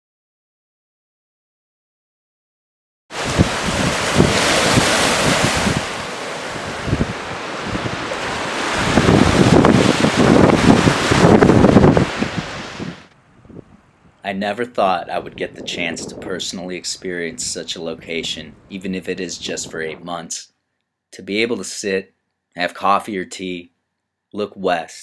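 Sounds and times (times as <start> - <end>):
choppy lake waves: 3.1 - 13.1
wind buffeting microphone: 3.2 - 14.2, 14.8 - 20.0.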